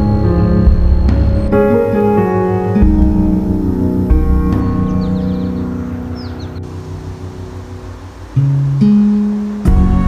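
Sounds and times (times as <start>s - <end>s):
low rumble: 0.0s - 7.8s
high falling bird chirps: 0.0s - 8.4s
soft ambient music: 0.0s - 10.0s.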